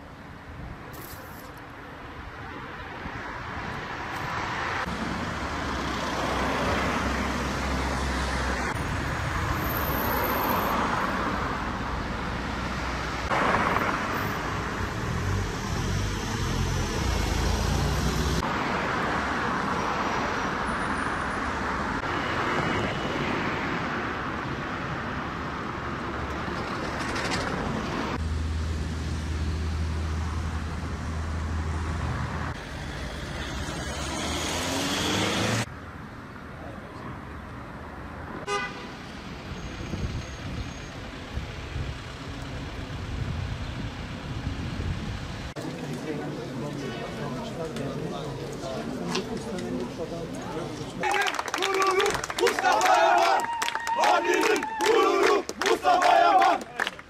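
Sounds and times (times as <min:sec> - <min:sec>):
cars passing on street: 0:00.0 - 0:57.0.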